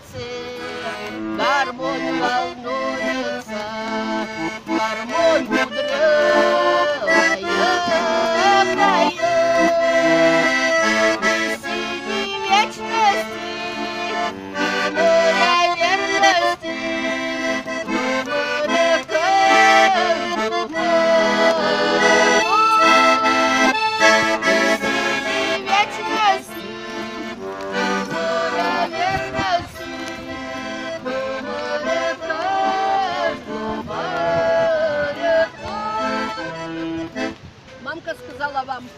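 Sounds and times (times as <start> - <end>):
button accordion playing folk tune: 0.0 - 38.9.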